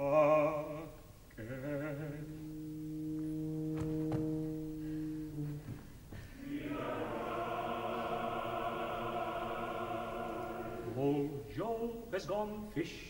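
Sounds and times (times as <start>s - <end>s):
tuba foghorn note: 2.2s - 5.9s
opera chorus singing: 6.4s - 11.6s.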